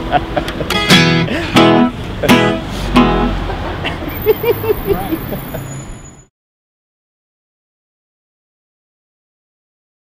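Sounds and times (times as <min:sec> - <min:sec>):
low traffic rumble: 0:00.0 - 0:06.3.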